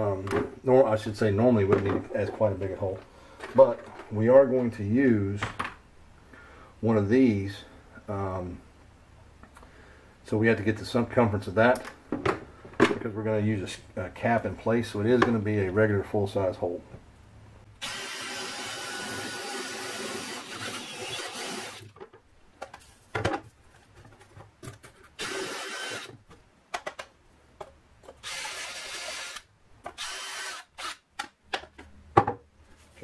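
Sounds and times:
cordless drill cutting wood: 17.8 - 21.8, 25.2 - 26.1, 28.2 - 31.0.

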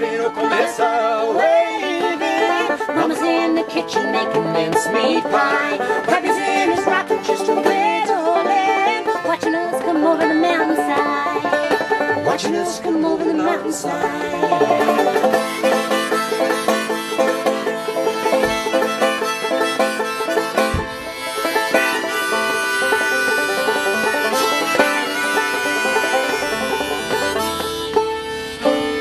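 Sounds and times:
banjo picking: 0.0 - 29.0
fiddle playing: 0.0 - 29.0.

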